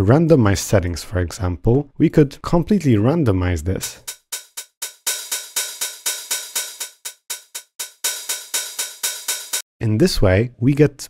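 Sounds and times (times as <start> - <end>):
hi-hat hits: 3.8 - 9.6.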